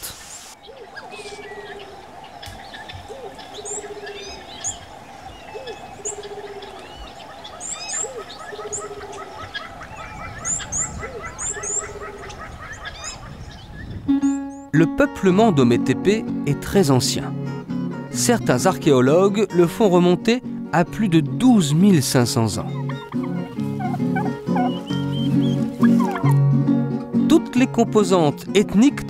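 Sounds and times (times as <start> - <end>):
birds chirping and whistling: 0.4 - 14.7, 22.4 - 26.5.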